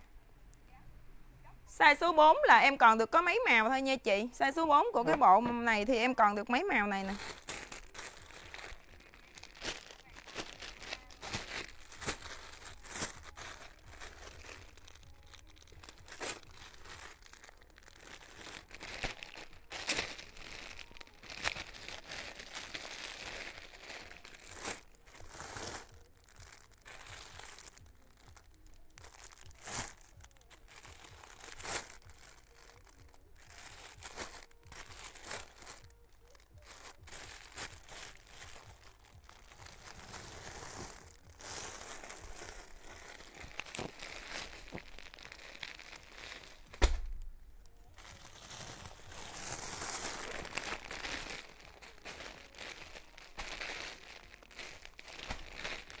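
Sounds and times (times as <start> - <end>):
plastic bags crinkling: 4.5 - 56.0.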